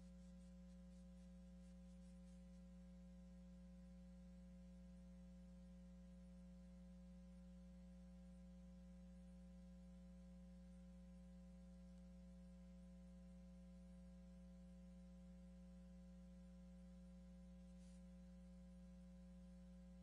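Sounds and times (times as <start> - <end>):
faint electrical hum: 0.0 - 20.0.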